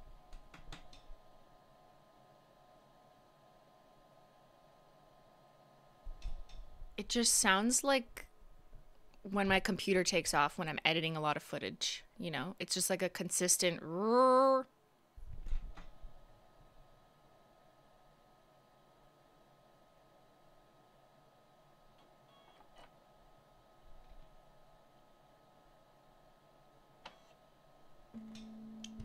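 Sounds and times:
internal fan humming: 0:26.6 - 0:29.0
steady low tone: 0:28.2 - 0:29.0.

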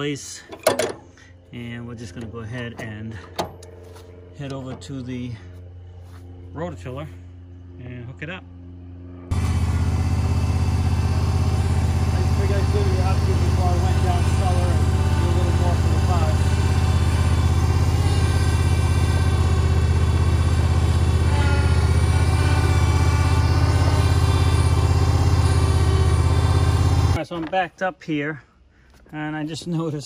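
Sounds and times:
garden tractor engine running: 0:08.7 - 0:27.2.

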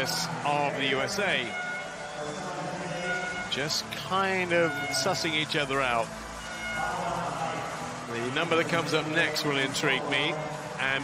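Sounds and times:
crowd hubbub: 0:00.0 - 0:11.0.

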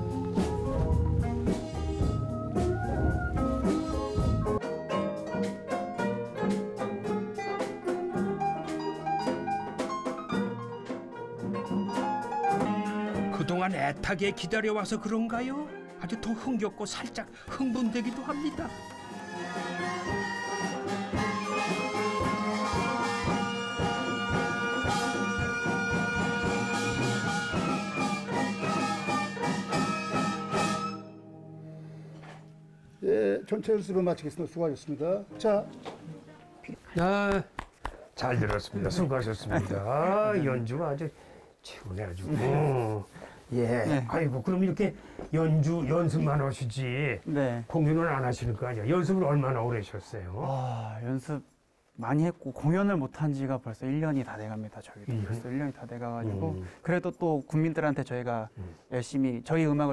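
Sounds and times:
flutes holding tones: 0:00.0 - 0:04.6, 0:18.7 - 0:31.2
traditional ensemble playing: 0:18.0 - 0:31.2
drum strokes: 0:19.8 - 0:30.8.

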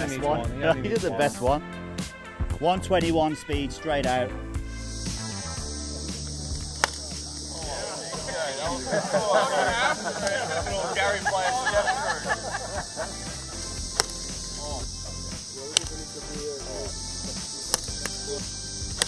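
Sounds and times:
people chattering and laughing: 0:00.0 - 0:01.6, 0:04.4 - 0:19.0
golf clubs striking balls: 0:06.1 - 0:19.0.

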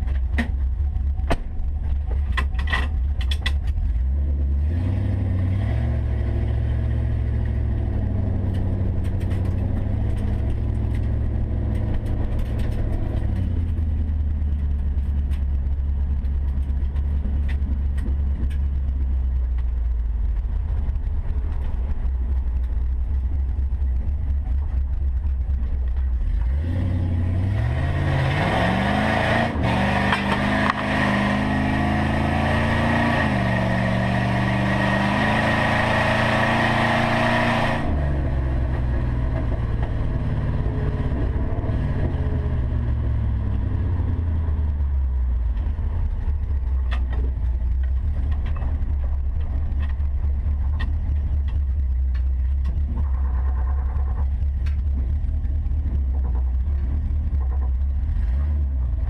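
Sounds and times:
car engine from inside cabin: 0:00.0 - 0:59.0.

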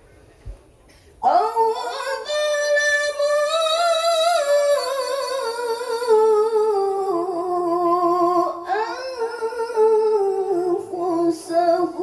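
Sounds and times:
woman reciting melodically: 0:01.2 - 0:12.0.

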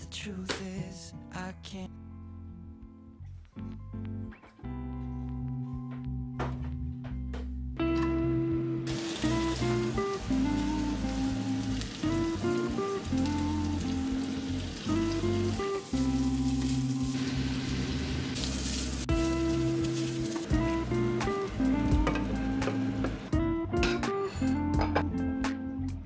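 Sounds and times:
background music: 0:00.0 - 0:26.0
meat and onions sizzling in a pan: 0:08.9 - 0:23.3.

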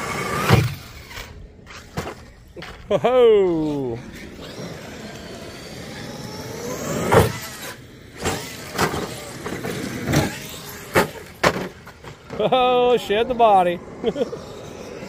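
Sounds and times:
rc truck motor whine: 0:00.0 - 0:15.0
sharp thumps of truck tumbling: 0:07.0 - 0:07.6, 0:08.2 - 0:12.5.

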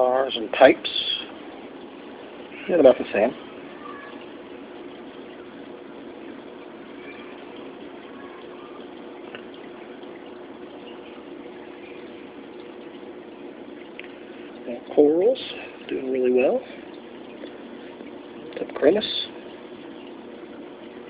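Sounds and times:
bubbling water rushing: 0:00.0 - 0:21.0
low pump hum: 0:00.0 - 0:21.0.

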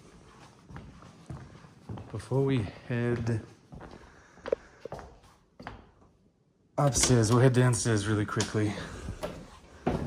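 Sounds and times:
footsteps on tile floor: 0:00.0 - 0:06.2, 0:08.3 - 0:10.0.

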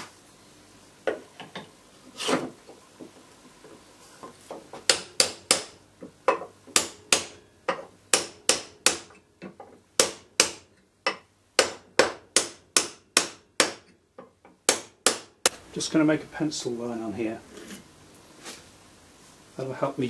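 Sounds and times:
hammer striking steel bar: 0:04.9 - 0:05.8, 0:06.8 - 0:09.2, 0:10.0 - 0:13.9, 0:14.7 - 0:15.6.

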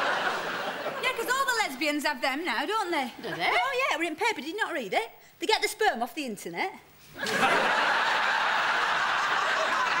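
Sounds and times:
audience laughing: 0:00.0 - 0:01.2, 0:07.2 - 0:10.0.

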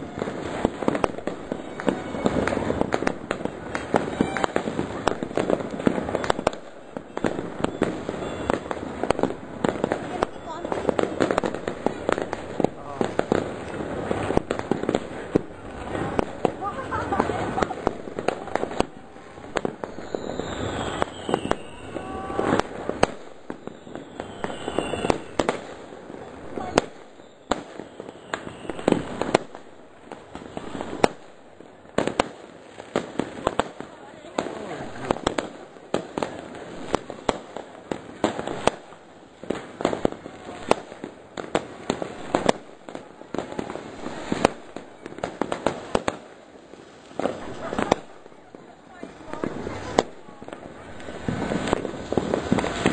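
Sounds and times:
whistling rockets: 0:00.0 - 0:25.8, 0:26.5 - 0:29.6, 0:30.3 - 0:31.3, 0:49.3 - 0:52.9
firecrackers banging and crackling: 0:00.0 - 0:52.9.

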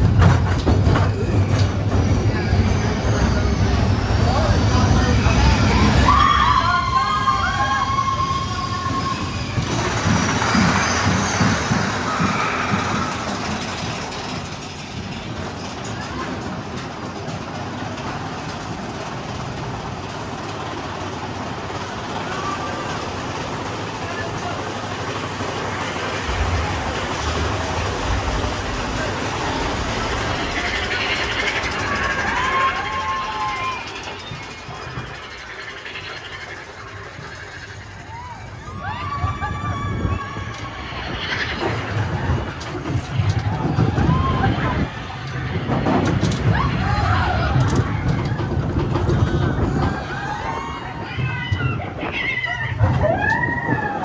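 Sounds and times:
deeper low rumble: 0:00.0 - 0:54.0
roller coaster rumbling on track: 0:00.0 - 0:54.0.

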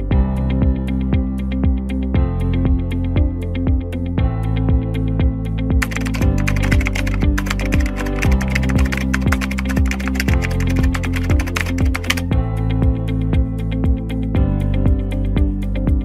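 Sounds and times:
keyboard typing clicks: 0:05.8 - 0:12.3
electronic music with beat: 0:05.8 - 0:12.4.

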